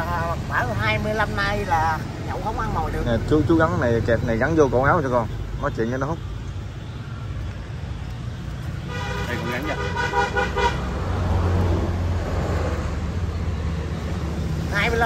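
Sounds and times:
passing vehicle engine hum: 0.0 - 15.0
road traffic: 0.0 - 15.0
vehicle horn blast: 8.9 - 10.9.

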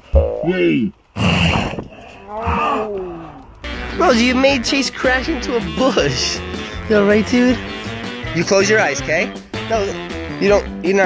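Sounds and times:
child groaning: 2.2 - 3.4
background music: 3.6 - 11.0.

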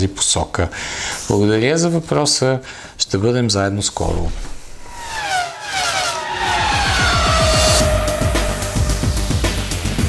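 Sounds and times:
engine revving: 4.7 - 10.0
race car engine passing by: 4.7 - 10.0.

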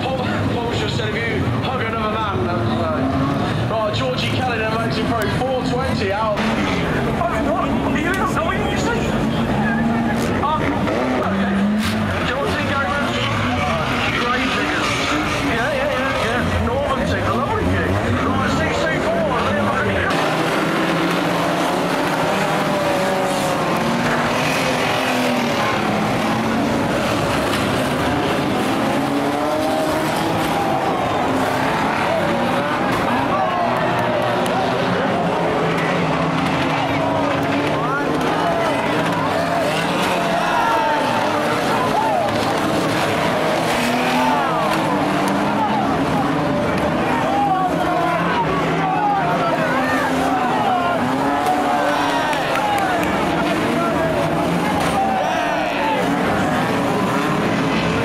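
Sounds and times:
indistinct voices: 0.0 - 58.0
race car engines revving: 0.0 - 58.0
tyres skidding on shale: 0.0 - 58.0.

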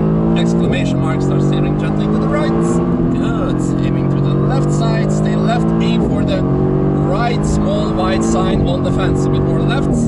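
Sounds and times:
car engine revving: 0.0 - 10.0
gear upshift: 0.0 - 10.0.

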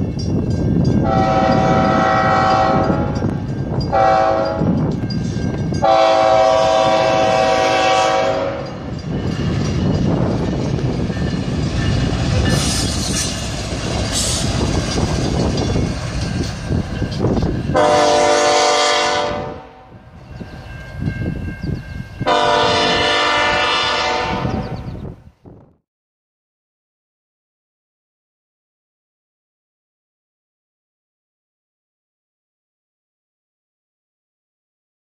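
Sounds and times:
locomotive engine and wheels rumbling: 0.0 - 25.8
locomotive horn blasts: 1.0 - 4.8, 5.7 - 9.0, 17.7 - 20.0, 22.2 - 24.9.

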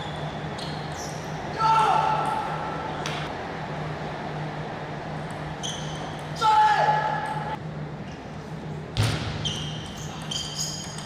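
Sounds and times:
brief high squeak: 5.6 - 6.3, 9.4 - 11.0.

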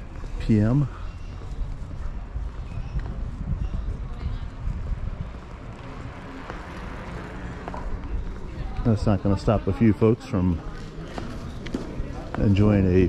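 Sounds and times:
faint distant voices: 0.0 - 13.0
wind on microphone: 1.2 - 8.8.

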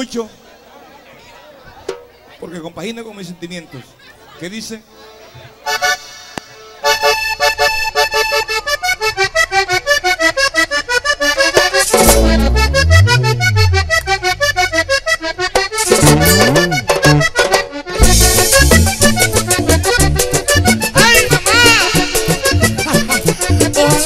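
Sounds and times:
button accordion playing: 6.8 - 24.0
sliding bass notes: 11.8 - 17.3.

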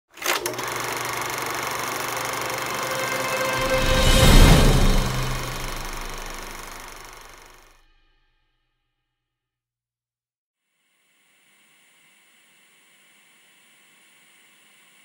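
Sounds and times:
low hum: 0.8 - 7.6.

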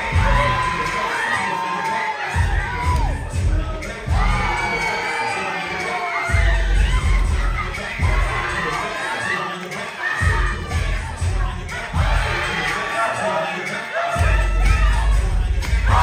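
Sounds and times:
children shouting and cheering: 0.0 - 16.0
heavy bass music: 0.0 - 16.0.

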